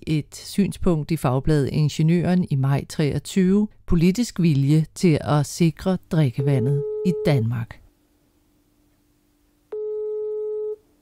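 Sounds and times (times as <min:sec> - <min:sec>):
telephone ringback beep: 0:09.7 - 0:10.8.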